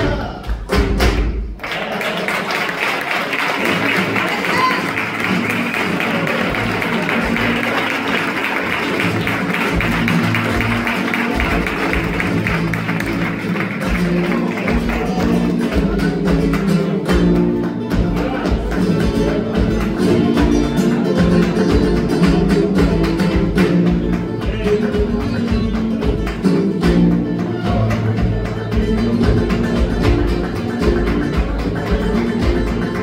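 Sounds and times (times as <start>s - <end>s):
flamenco guitar: 0.0s - 33.0s
handclapping: 0.2s - 33.0s.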